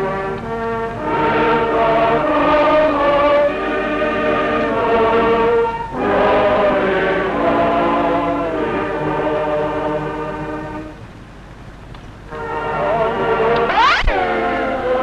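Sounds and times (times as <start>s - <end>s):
congregation singing a hymn: 0.0s - 11.0s, 12.3s - 15.0s.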